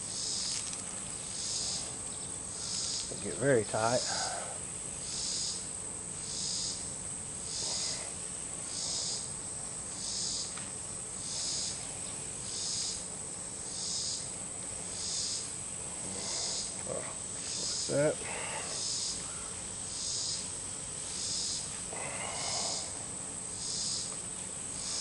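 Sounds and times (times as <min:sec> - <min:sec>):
high insect drone: 0:00.0 - 0:25.0
insects chirping in a pulse: 0:00.0 - 0:25.0.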